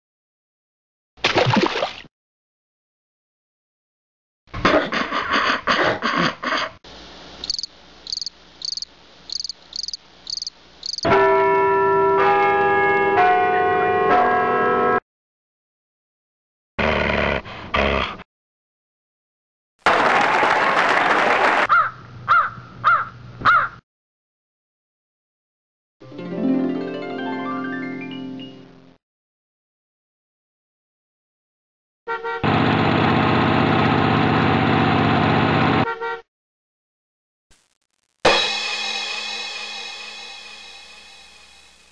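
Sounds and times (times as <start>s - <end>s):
crickets chirping: 7.4s - 11.1s
church bells ringing: 11.1s - 15.0s.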